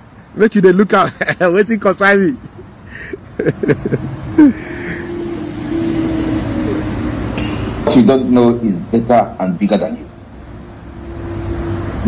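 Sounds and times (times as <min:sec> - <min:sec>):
steady motor drone: 0:03.6 - 0:08.0.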